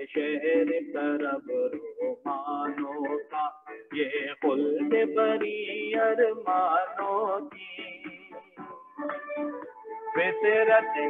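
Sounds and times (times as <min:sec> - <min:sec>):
man singing into microphone: 0:00.0 - 0:08.4, 0:10.2 - 0:11.0.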